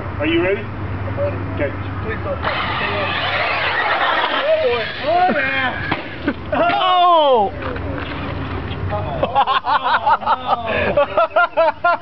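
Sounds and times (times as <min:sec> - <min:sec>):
rc car engine revving: 0:02.4 - 0:06.2.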